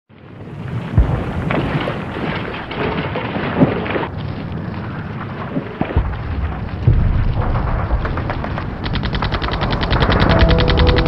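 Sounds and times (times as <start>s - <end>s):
crackling rumbling din: 0.1s - 11.0s.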